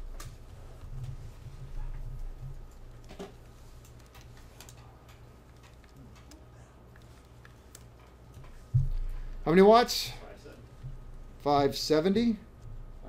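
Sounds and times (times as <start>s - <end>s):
faint ticks and clicks: 0.0s - 9.5s.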